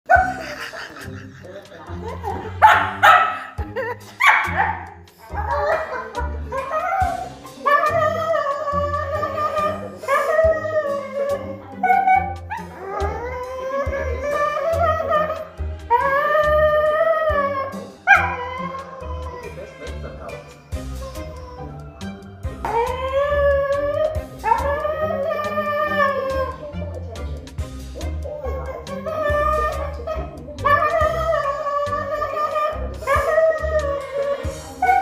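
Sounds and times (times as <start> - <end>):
background music: 0.1 - 35.0
dog howling: 4.2 - 26.8, 28.2 - 35.0.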